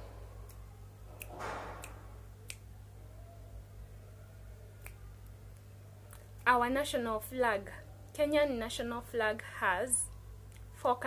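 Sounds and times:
finger snap: 0:00.5 - 0:02.7, 0:04.8 - 0:06.5.

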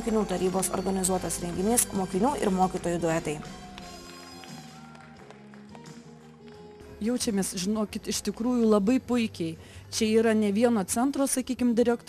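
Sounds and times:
quiet sustained background music: 0:00.0 - 0:12.0.

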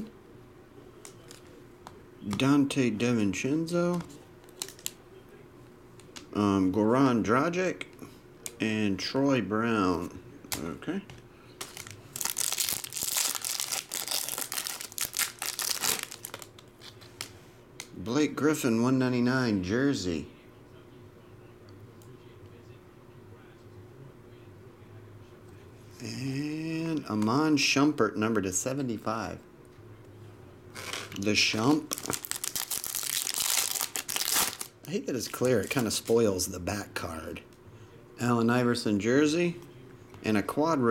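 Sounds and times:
card pack wrapper crinkling: 0:04.4 - 0:05.0, 0:11.6 - 0:17.3, 0:30.8 - 0:36.3.

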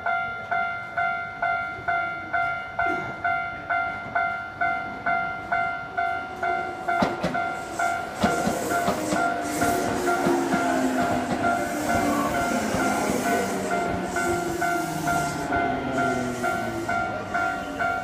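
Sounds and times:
level crossing warning bell: 0:00.0 - 0:18.0
train rumble and humming: 0:00.0 - 0:18.0
train wheels clacking over rail joints: 0:06.9 - 0:18.0.

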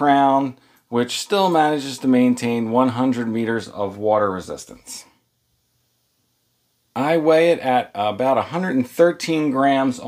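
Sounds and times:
person speaking: 0:00.0 - 0:05.3, 0:06.9 - 0:10.0.

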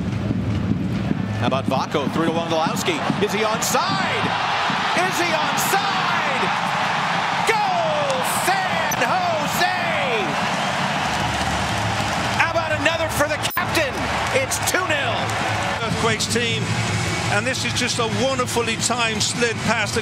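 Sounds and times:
stadium crowd cheering: 0:01.7 - 0:20.0.

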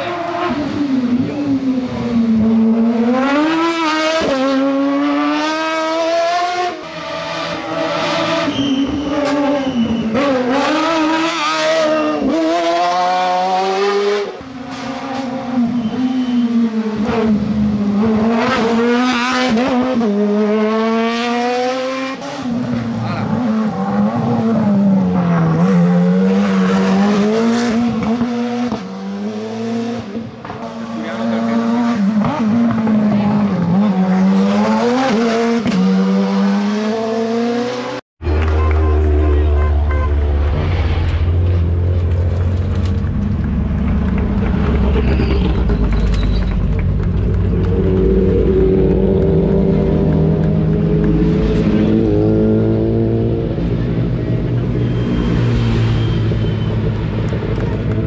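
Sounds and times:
race car engines revving past: 0:00.0 - 0:58.0.

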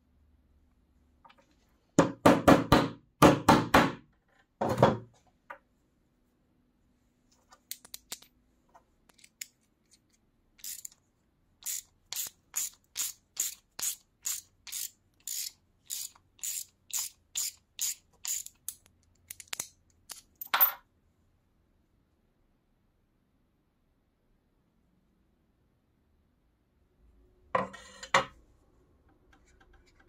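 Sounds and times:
hand scraping workpiece: 0:27.6 - 0:28.3.

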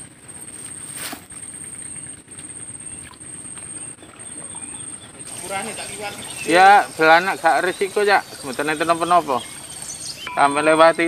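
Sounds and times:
faint chirps: 0:02.8 - 0:11.0
thin high-pitched whine: 0:05.3 - 0:11.0.

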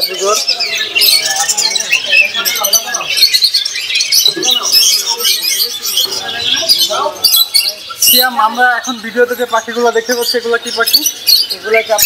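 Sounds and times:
budgerigars chirping: 0:00.0 - 0:12.0
voices: 0:00.0 - 0:12.0.

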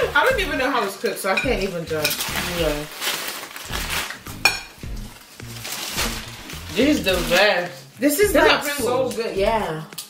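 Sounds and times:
quiet background music: 0:00.0 - 0:10.0
plates and cutlery clinking: 0:00.1 - 0:02.8, 0:03.8 - 0:04.9.

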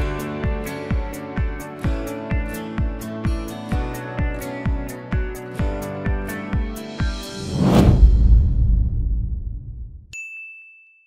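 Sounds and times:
low rumble: 0:07.4 - 0:10.1.

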